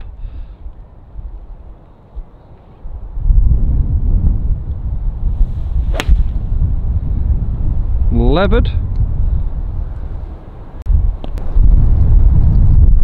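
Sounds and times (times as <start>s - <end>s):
wind rumble on microphone: 0.0s - 13.0s
golf club striking ball: 5.9s - 6.5s.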